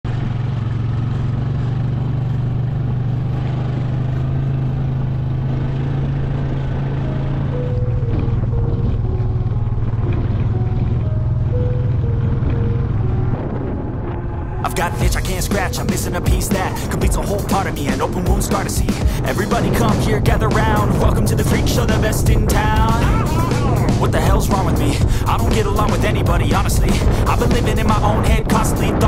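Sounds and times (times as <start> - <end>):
rap instrumental intro music: 14.6 - 29.0.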